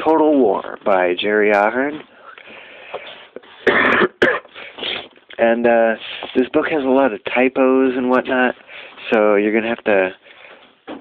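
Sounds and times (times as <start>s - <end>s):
person coughing: 3.6s - 5.1s.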